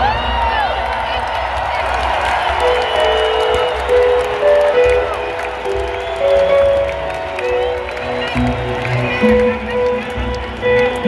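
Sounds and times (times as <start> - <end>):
crowd noise: 0.0 - 11.0
lead instrument melody notes: 2.6 - 11.0.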